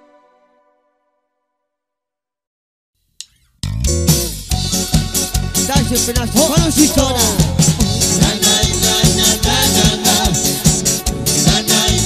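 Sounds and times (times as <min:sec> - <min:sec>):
band playing with heavy bass: 0:03.6 - 0:12.0.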